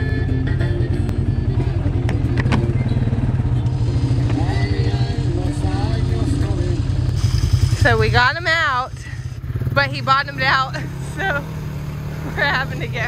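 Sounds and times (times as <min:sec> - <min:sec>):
atv engine running: 0:00.0 - 0:13.0.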